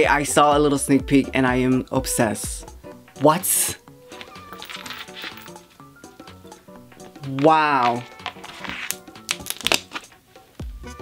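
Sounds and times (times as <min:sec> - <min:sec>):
background music with low beat: 0:00.0 - 0:04.6, 0:05.4 - 0:11.0
cardboard sleeve crackling: 0:04.1 - 0:05.5, 0:07.0 - 0:10.1.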